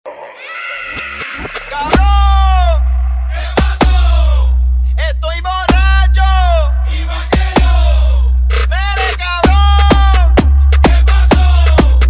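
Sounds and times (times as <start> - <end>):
high drawn-out vocal cry: 0.1 - 2.2.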